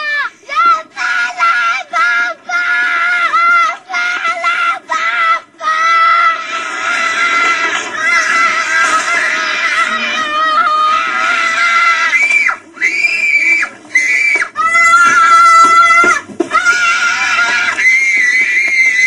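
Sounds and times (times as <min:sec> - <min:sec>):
boy screaming: 0:00.0 - 0:19.0.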